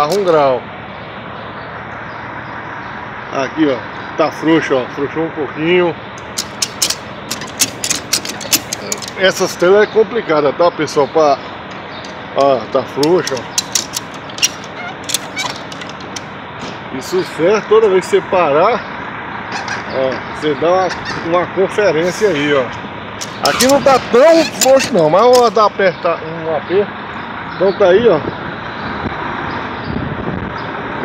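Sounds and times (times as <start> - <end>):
road traffic: 0.0 - 31.0
ratchet strap clicking: 6.2 - 9.5, 11.7 - 16.3, 23.2 - 25.6.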